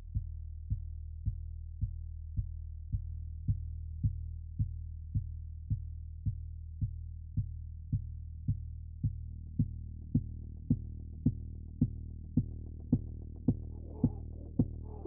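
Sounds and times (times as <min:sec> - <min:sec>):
low bass drone: 0:00.0 - 0:15.0
muffled kick drum pulse: 0:00.0 - 0:15.0.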